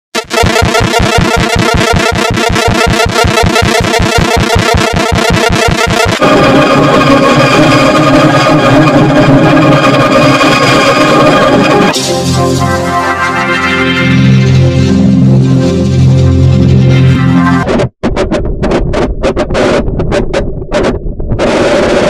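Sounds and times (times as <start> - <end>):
distorted electronic logo music: 0.2 - 20.2, 21.4 - 22.0.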